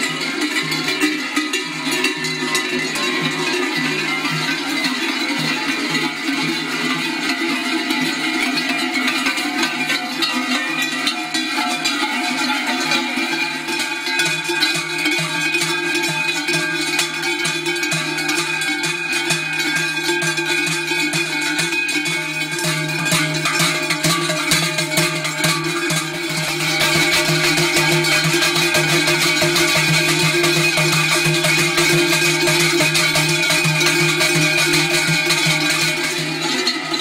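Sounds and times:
cowbells clanging: 0:00.0 - 0:37.0.

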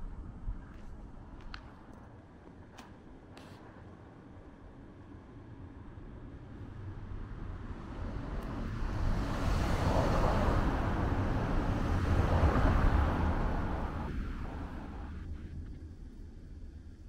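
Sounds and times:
car passing by: 0:06.6 - 0:15.3.

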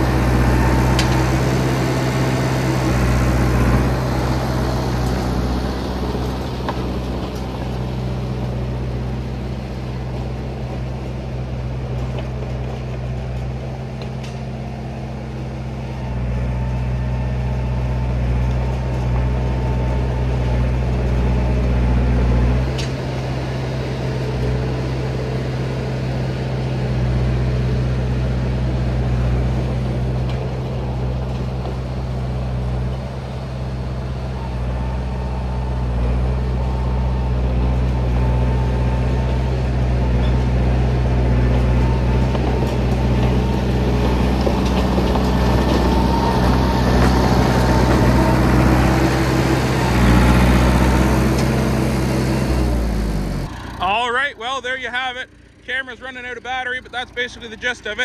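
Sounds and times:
crawler dozer engine droning: 0:00.0 - 0:58.0.

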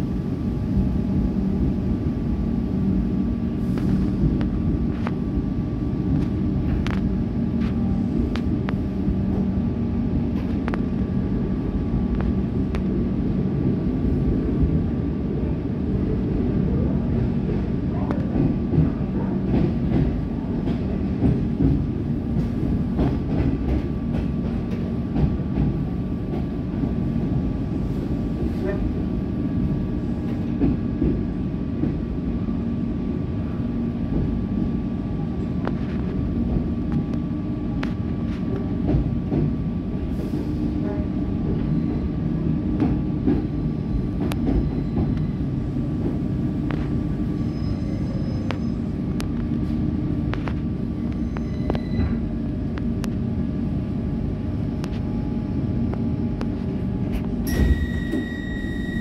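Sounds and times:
train motors and wheels rumbling: 0:00.0 - 0:59.0.

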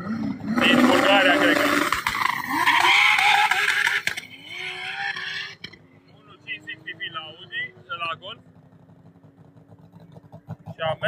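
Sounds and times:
faint engine rumble: 0:04.2 - 0:11.0.

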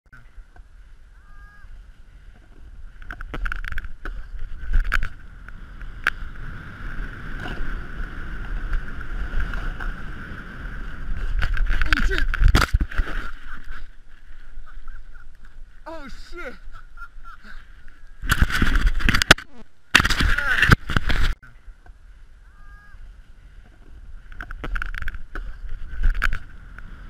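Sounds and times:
wind rumbling on microphone: 0:00.1 - 0:15.9, 0:16.6 - 0:27.0
snowboard scraping over snow: 0:04.2 - 0:15.1.

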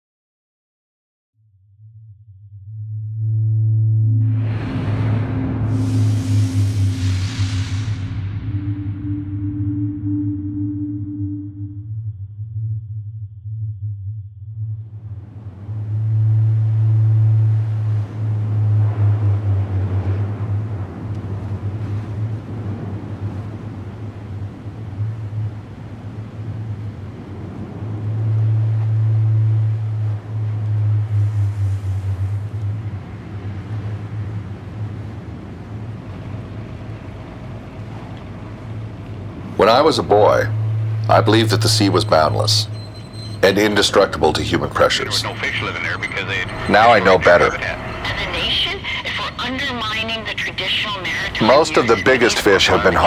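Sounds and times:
deep rumble: 0:01.7 - 0:53.0
ocean surf washing: 0:04.2 - 0:11.3, 0:14.9 - 0:53.0.

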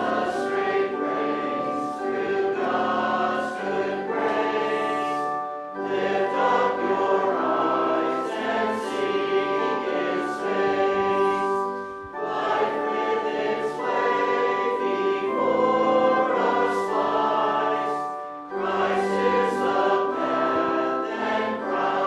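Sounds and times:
congregation singing a hymn: 0:00.0 - 0:22.0.

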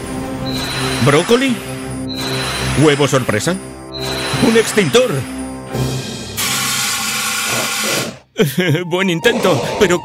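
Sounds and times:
fire extinguisher spraying hiss: 0:06.4 - 0:08.2.

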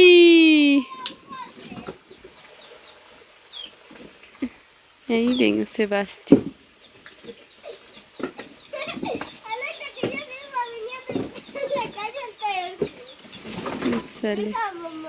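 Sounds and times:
children talking and calling: 0:00.0 - 0:02.3, 0:07.1 - 0:15.0.

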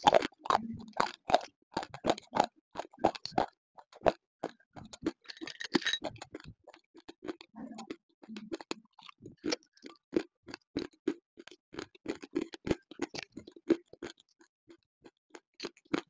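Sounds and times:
crunching and chewing clay: 0:00.0 - 0:16.0.

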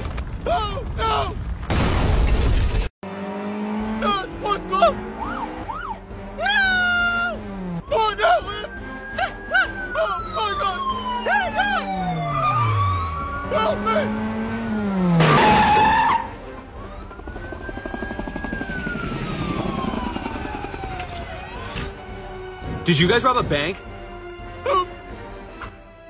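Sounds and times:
police siren wailing: 0:03.8 - 0:22.5.

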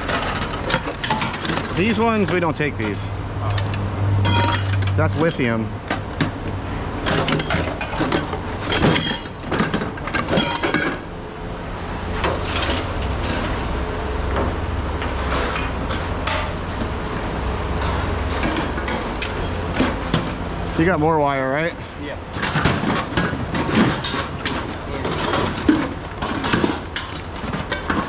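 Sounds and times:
steady low hum: 0:00.0 - 0:28.0
scrap metal clanking: 0:07.0 - 0:11.1, 0:12.2 - 0:13.6, 0:22.3 - 0:28.0.

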